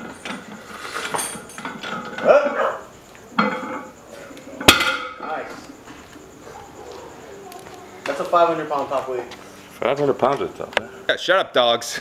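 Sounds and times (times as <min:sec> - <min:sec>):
barbell plates clinking and rattling: 0:00.0 - 0:02.4, 0:03.4 - 0:03.9.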